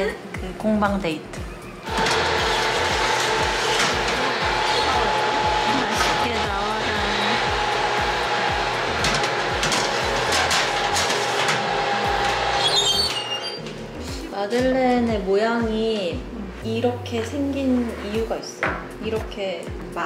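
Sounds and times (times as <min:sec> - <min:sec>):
oven fan humming: 0:01.5 - 0:18.4
metal trays clicking and scraping: 0:09.0 - 0:13.8.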